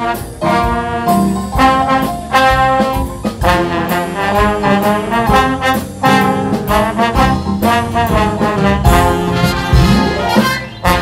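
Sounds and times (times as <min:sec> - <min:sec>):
jazz band with trumpets: 0:00.0 - 0:11.0.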